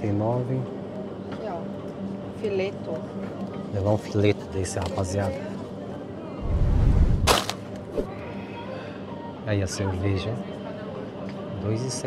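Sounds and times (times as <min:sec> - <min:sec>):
sharp crack: 0:07.2 - 0:07.9.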